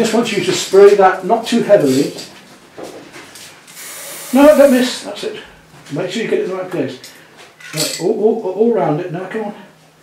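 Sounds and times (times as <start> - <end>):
spray-paint can hissing: 3.7 - 5.0.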